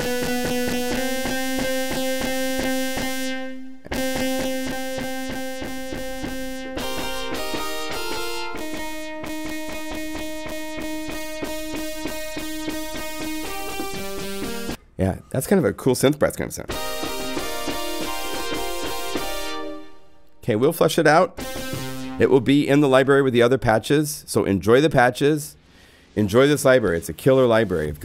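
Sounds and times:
synthesizer sustained chords: 0.0s - 14.8s, 16.7s - 20.2s, 21.4s - 22.5s.

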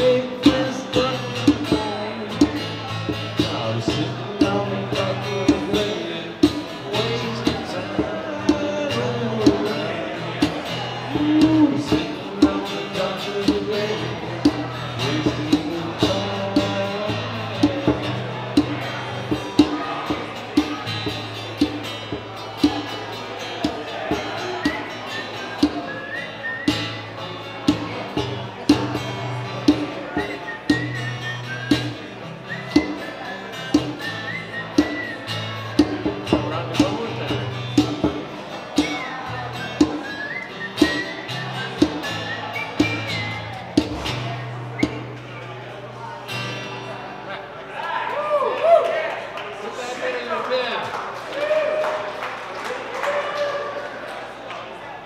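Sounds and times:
acoustic guitar strumming: 0.0s - 47.6s.

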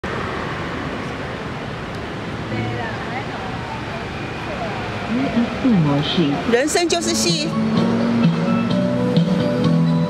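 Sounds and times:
traffic rushing: 0.0s - 10.0s.

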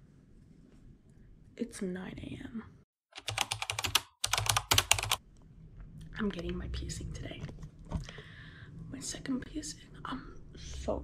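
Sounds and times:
keyboard typing: 3.2s - 5.2s.

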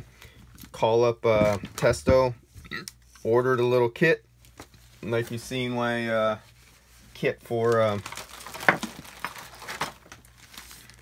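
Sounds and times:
rustling of packaging: 4.4s - 11.0s.

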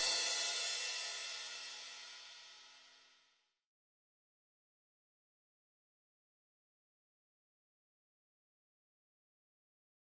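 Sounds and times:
cymbal ringing: 0.0s - 3.1s.

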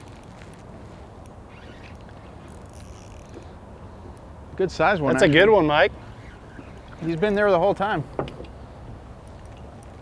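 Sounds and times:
fishing reel clicks: 2.5s - 3.4s.

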